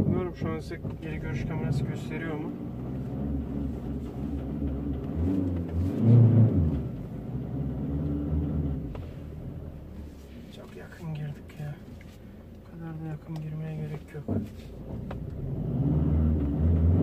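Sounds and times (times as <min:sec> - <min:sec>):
diesel van engine running: 0:00.0 - 0:17.0.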